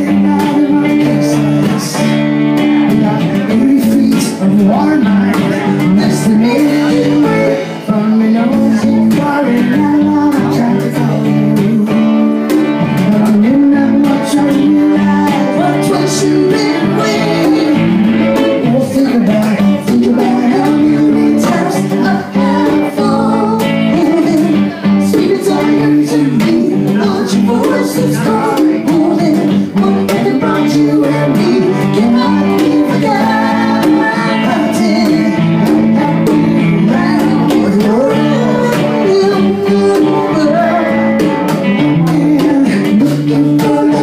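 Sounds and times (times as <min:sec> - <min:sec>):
acoustic and electric guitars: 0:00.0 - 0:44.0
person singing: 0:00.0 - 0:44.0.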